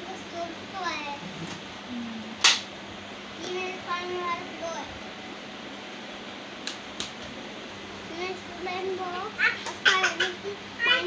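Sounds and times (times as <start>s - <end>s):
child's voice: 0.0s - 1.2s, 3.4s - 5.0s, 8.1s - 11.0s
faint steady hum: 0.0s - 11.0s.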